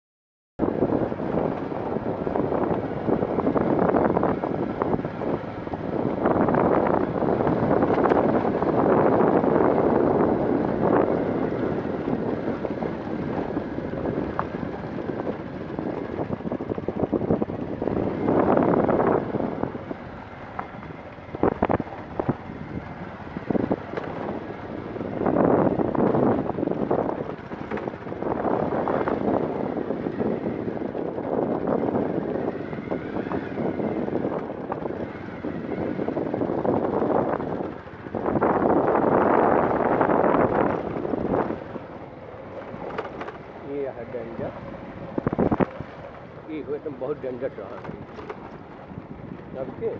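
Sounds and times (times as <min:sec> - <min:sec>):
motorcycle engine running: 0:00.6 - 0:49.9
wind buffeting microphone: 0:00.6 - 0:49.9.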